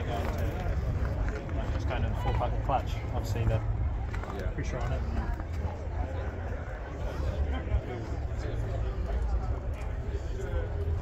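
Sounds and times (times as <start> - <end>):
background conversation: 0.0 - 11.0.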